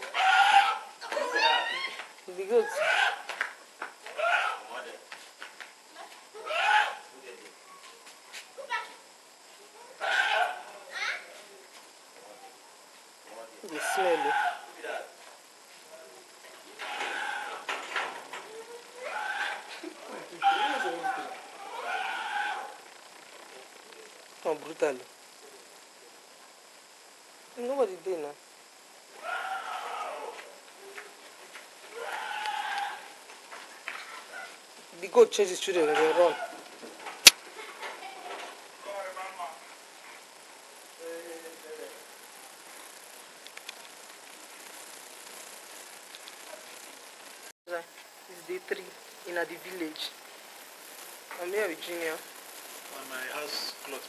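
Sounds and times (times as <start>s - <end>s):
outdoor background hiss: 0.0s - 54.0s
goat bleating: 20.4s - 22.7s, 32.0s - 33.1s
faint clicks: 43.4s - 44.4s, 46.0s - 46.5s.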